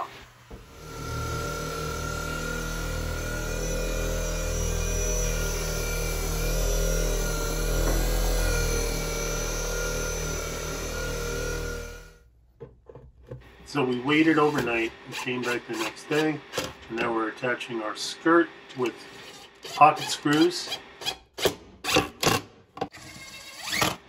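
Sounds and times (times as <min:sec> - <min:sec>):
orbital buffer on wood: 0:00.0 - 0:12.1.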